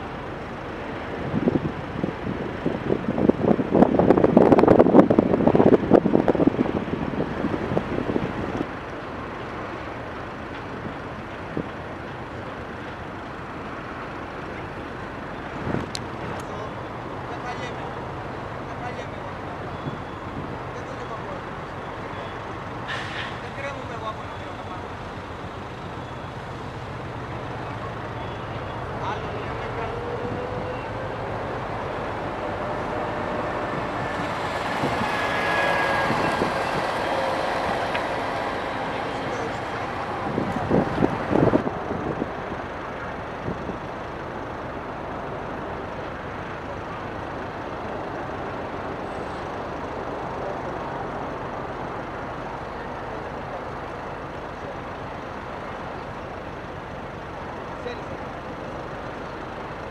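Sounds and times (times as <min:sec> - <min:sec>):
road vehicles running: 0:00.0 - 0:59.9
vehicle high whine: 0:00.0 - 0:59.9.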